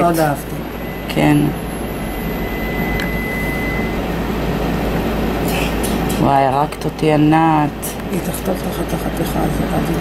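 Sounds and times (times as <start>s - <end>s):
faint high whistle: 2.4s - 4.0s.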